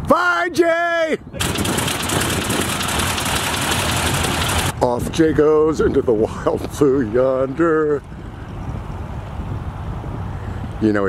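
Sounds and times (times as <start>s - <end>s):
biplane engine droning: 1.4s - 4.8s.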